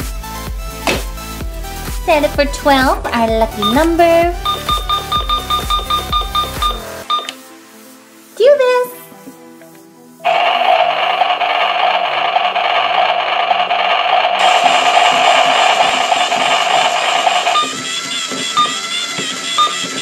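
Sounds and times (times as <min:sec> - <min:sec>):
background music: 0:00.0 - 0:10.3
toy blender motor whirring: 0:10.3 - 0:20.0.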